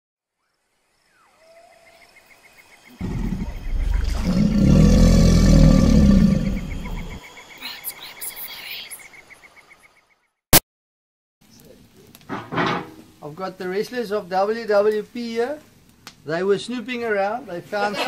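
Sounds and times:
rapid chirping: 1.2s - 10.0s
deep animal roar: 3.0s - 7.2s.

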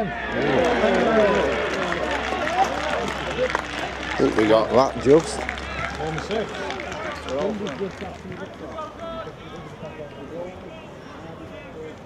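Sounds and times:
people talking and calling out: 0.0s - 12.0s.

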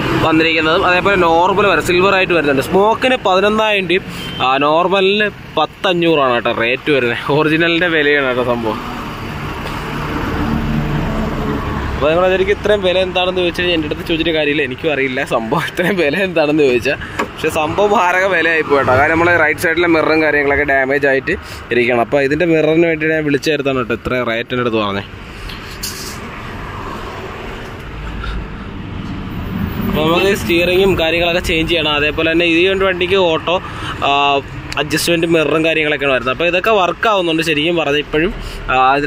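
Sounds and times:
traffic engine and tyre rumble: 0.0s - 39.0s.

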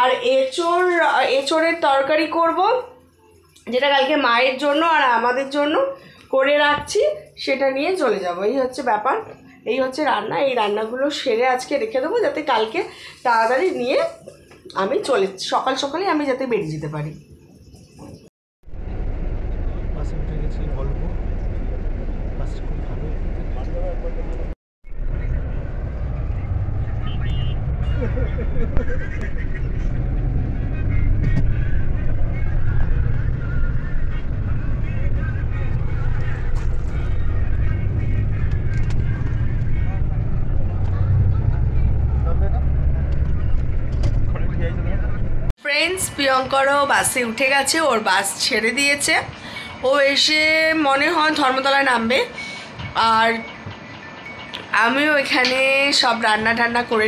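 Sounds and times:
bus engine and road noise: 0.0s - 15.8s, 17.1s - 57.0s.

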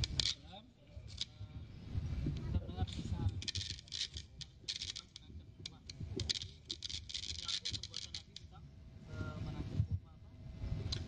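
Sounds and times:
rustling handling noise: 3.3s - 5.2s, 5.8s - 8.5s.

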